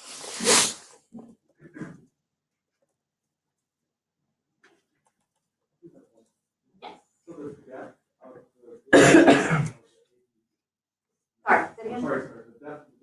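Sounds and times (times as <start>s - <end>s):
person coughing: 8.9s - 9.8s.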